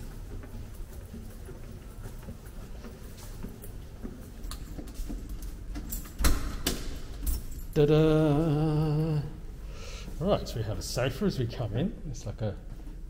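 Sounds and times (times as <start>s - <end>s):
footsteps on tiled floor: 0.0s - 7.6s.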